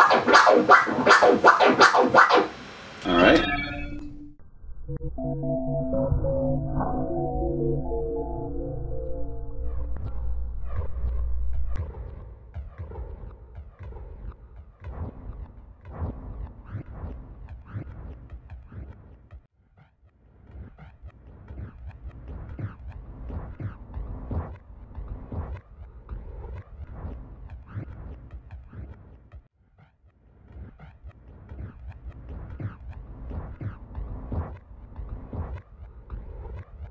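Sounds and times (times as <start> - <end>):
vinyl record scratching: 0.0 - 3.4
deep bass: 4.4 - 12.3.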